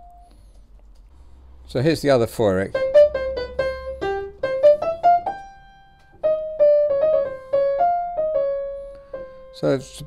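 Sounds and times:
upright piano melody: 0:00.0 - 0:00.3, 0:02.5 - 0:10.0.

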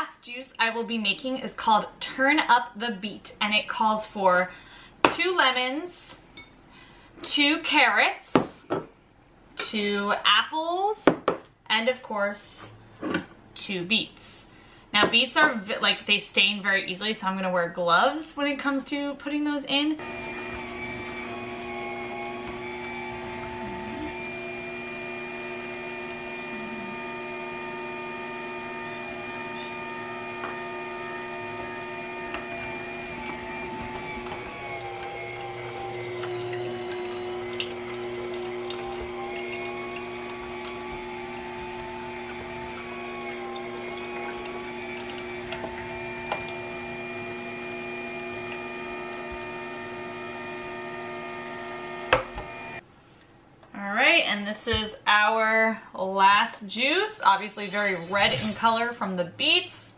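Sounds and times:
juicer motor hum: 0:20.0 - 0:52.8.

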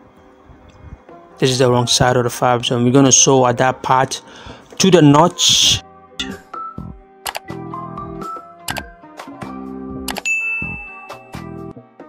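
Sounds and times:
background music: 0:00.0 - 0:12.0
bright bell ding: 0:10.2 - 0:11.5.

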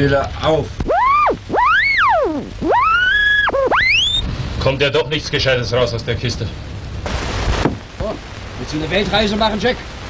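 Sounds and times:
radio tuning whistle: 0:00.9 - 0:04.4.

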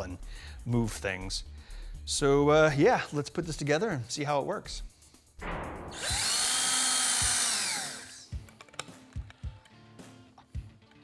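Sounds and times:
power drill motor whine: 0:05.9 - 0:08.3
small parts clicking and knocking: 0:08.3 - 0:09.4.

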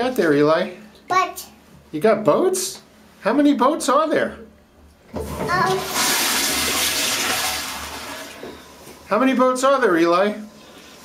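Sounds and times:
bath water splashing: 0:05.1 - 0:11.0.

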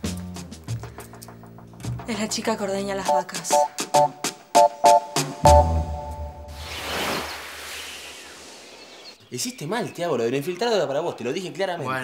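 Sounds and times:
low music sting note: 0:05.4 - 0:06.6
hissing whoosh: 0:06.5 - 0:09.1.

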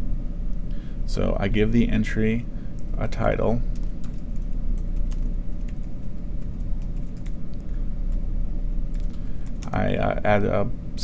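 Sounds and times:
steady low hum: 0:00.0 - 0:11.0
keyboard typing clicks: 0:03.8 - 0:07.7, 0:08.9 - 0:09.7.

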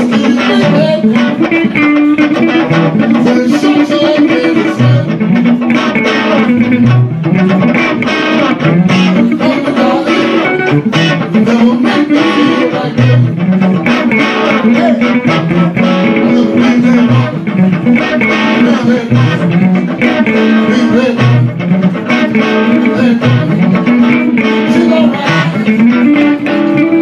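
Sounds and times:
electric guitar low riff: 0:00.0 - 0:27.0
picked electric guitar lead: 0:00.0 - 0:27.0.

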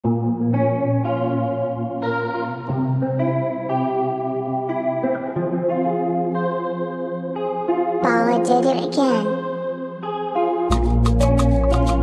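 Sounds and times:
electric guitar chords with chorus: 0:00.0 - 0:12.0.

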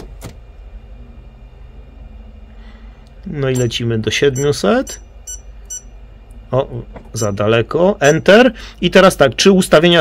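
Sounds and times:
high-pitched key beeps: 0:03.5 - 0:05.9, 0:07.2 - 0:07.4, 0:08.0 - 0:08.4.

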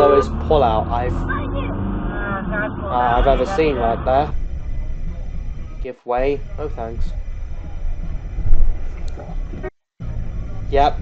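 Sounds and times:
car engine rumble: 0:00.0 - 0:11.0
road noise: 0:00.0 - 0:11.0.

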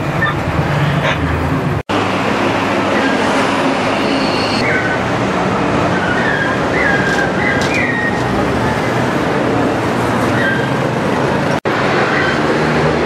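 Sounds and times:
bus engine and road rumble: 0:00.0 - 0:13.0
street traffic roar: 0:00.0 - 0:13.0.

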